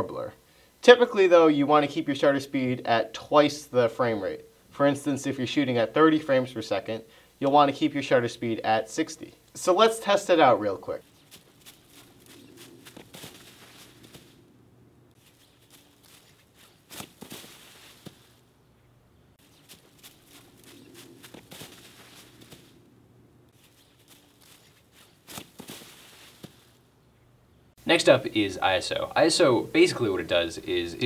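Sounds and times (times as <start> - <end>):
footsteps rustling in dry leaves: 11.0 - 14.5, 15.1 - 18.5, 19.4 - 22.8, 23.5 - 26.8
loud crunch of leaves: 11.0 - 14.5, 15.2 - 18.5, 19.4 - 22.8, 23.5 - 26.8.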